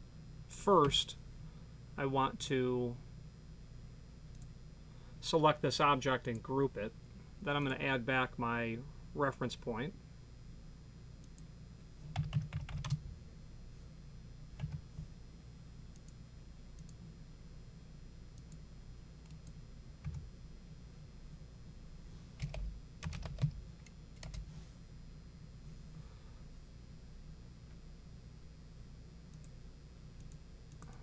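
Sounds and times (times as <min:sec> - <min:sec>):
faint low hum: 0:00.0 - 0:31.0
computer keyboard typing: 0:12.1 - 0:13.0, 0:14.6 - 0:14.9, 0:19.3 - 0:20.2, 0:22.4 - 0:24.5.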